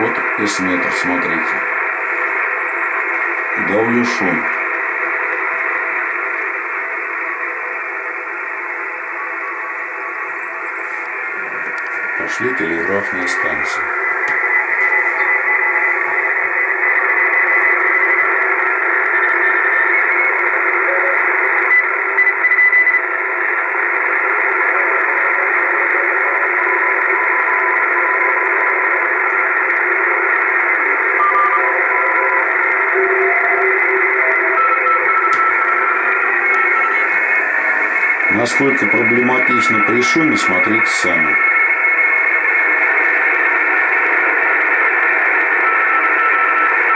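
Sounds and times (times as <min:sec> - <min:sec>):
radio band noise hiss: 0:00.0 - 0:46.9
morse code tones: 0:31.1 - 0:41.7.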